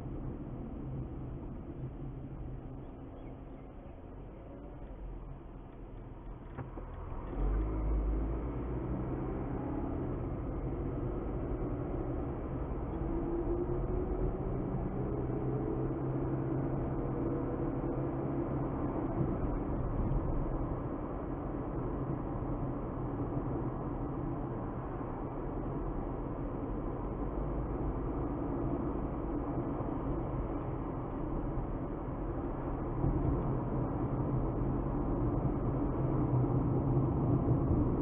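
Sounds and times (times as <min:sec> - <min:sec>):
car engine and tyre noise: 0:00.0 - 0:38.0.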